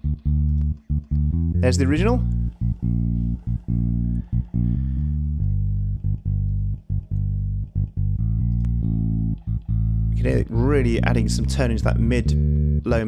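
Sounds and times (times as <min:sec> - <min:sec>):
bass guitar held low notes: 0:00.0 - 0:13.0.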